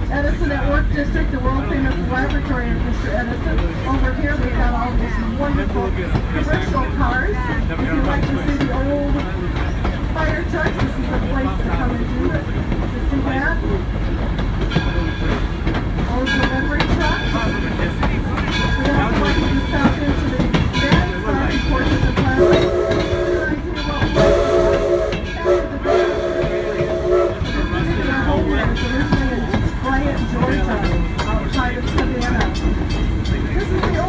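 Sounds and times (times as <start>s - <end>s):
train wheels rumbling on rail: 0.0s - 34.0s
steam whistle blasts: 22.4s - 23.6s, 24.2s - 27.6s.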